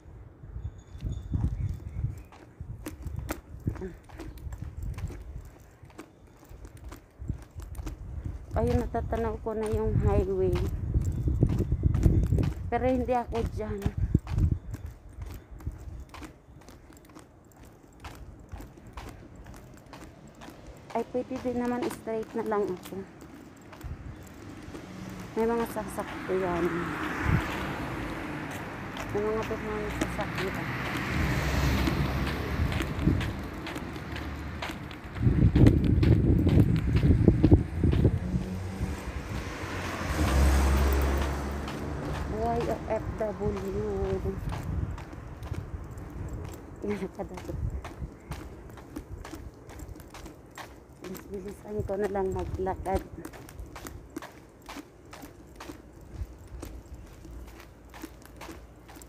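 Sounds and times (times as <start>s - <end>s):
footsteps on pavement: 1.0s - 59.0s
car passing: 18.7s - 49.5s
low rumble on microphone: 34.5s - 43.3s.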